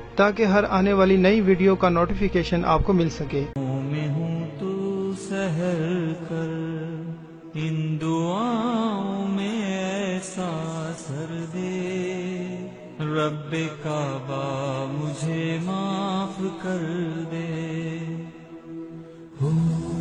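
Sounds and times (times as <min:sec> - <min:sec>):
solo voice singing wordless notes: 0:03.6 - 0:20.0
steady held drone: 0:15.2 - 0:20.0.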